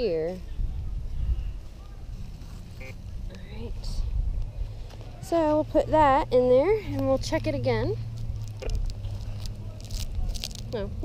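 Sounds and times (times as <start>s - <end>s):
wood-chip mulch crunching: 8.0s - 11.0s.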